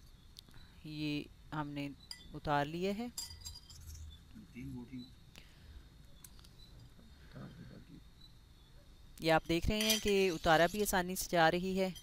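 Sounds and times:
metal skewer clinking on plate: 9.4 - 11.0.

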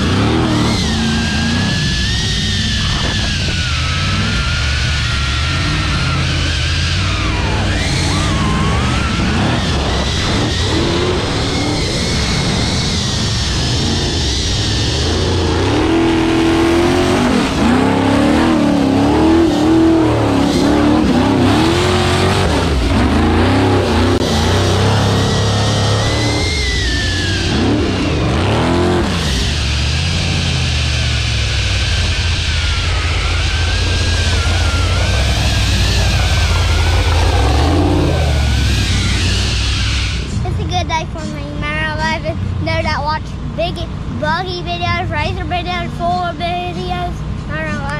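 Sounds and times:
engine revving hard: 0.0 - 44.2.

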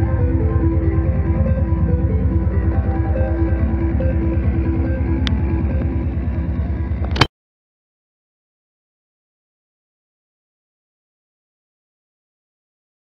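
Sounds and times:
guitar music with fast beat: 0.0 - 7.3.

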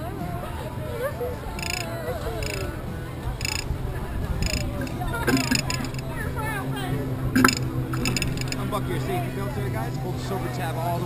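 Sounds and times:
short high clicks: 1.6 - 2.7, 3.4 - 3.6, 4.4 - 6.0, 7.4 - 8.6
steady low hum: 1.6 - 9.3.

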